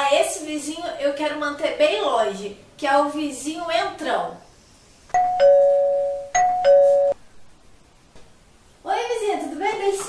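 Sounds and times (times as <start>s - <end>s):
two-tone doorbell chime: 5.2s - 7.2s.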